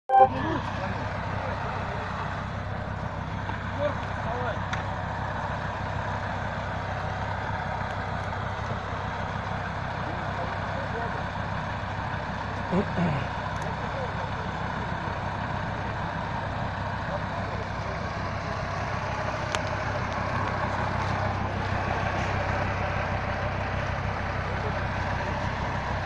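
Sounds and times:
engine running steadily: 0.1 - 26.0
faint voices: 12.5 - 26.0.

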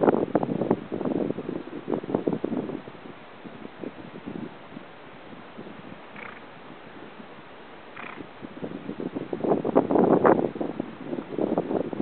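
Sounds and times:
steady outdoor hiss: 0.0 - 12.0
wind rumbling on microphone: 0.0 - 12.0.

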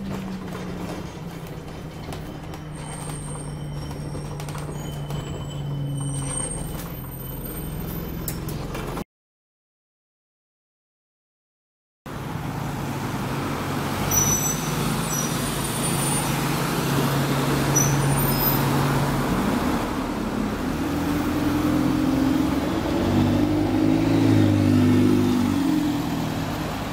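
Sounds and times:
bus diesel engine accelerating: 0.0 - 9.0, 12.1 - 26.9.

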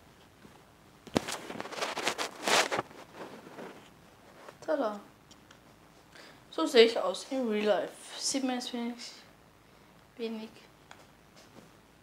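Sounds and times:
rustling and scraping of clothing: 0.1 - 4.7, 11.0 - 11.8.

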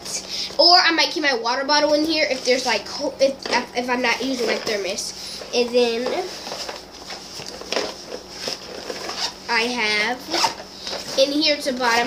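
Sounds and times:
fabric bag rustling: 3.6 - 9.6.

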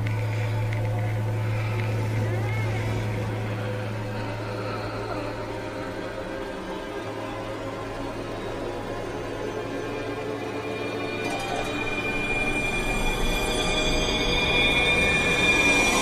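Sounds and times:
dense steady tones: 0.0 - 16.0
loud low hum: 0.0 - 16.0
wavering whine: 0.0 - 16.0.

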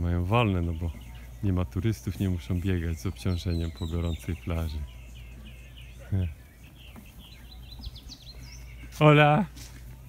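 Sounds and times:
small birds chirping and twittering: 0.0 - 10.0.

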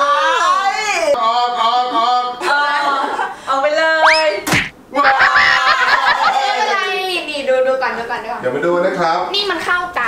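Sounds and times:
cartoon whistle: 4.0 - 4.4
dart thwack: 4.0 - 4.8
voices and laughter: 4.9 - 7.1.

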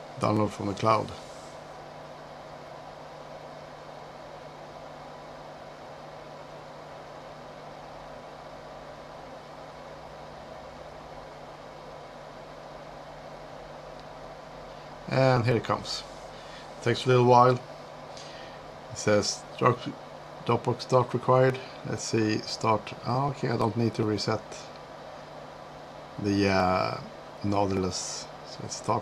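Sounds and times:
faint constant hum: 0.0 - 29.0
background hiss: 13.8 - 29.0.

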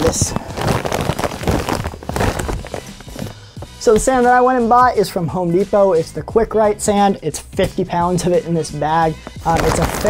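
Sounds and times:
sand bag rustling and crinkling: 0.0 - 3.3.

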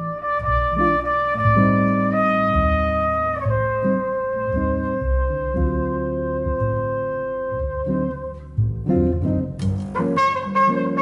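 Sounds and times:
trumpet holding long notes: 0.0 - 8.3, 10.0 - 11.0
jazz guitar: 0.0 - 11.0
upright double bass: 0.0 - 11.0.

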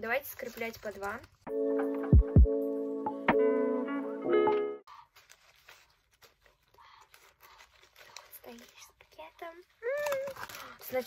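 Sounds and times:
cellophane crinkling: 0.0 - 1.4, 5.1 - 11.0.

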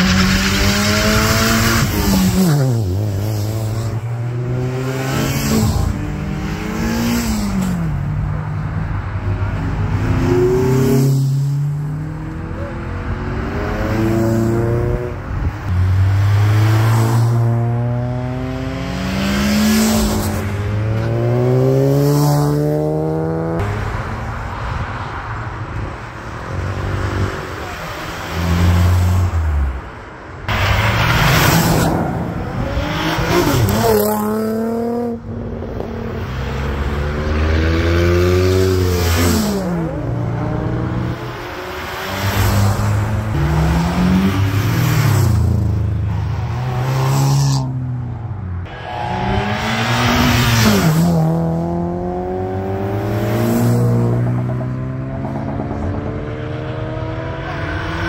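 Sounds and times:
cars accelerating past: 0.0 - 25.4, 30.5 - 58.0.

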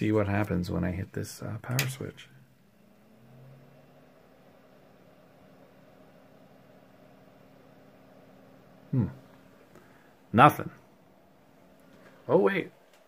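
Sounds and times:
computer fans humming: 0.0 - 13.0.

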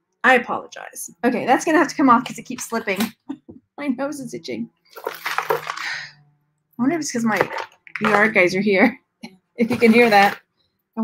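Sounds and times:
person speaking: 6.8 - 8.9, 9.6 - 10.4.

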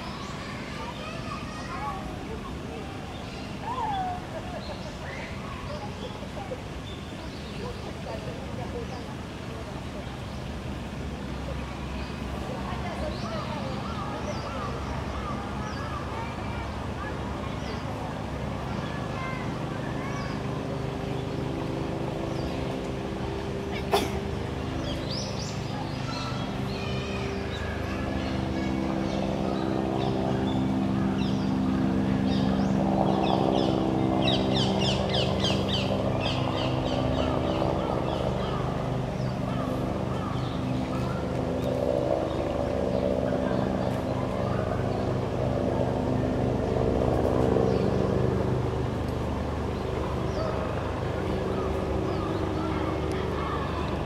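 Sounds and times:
distant voices: 0.0 - 54.0
low engine-like hum: 0.0 - 54.0.

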